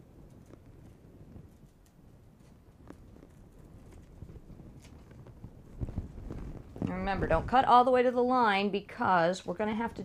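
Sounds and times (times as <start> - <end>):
paper rustling: 0.3 - 7.0.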